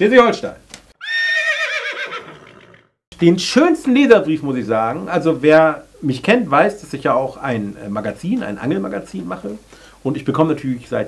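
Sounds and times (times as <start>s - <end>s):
horse whinnying: 1.0s - 3.0s.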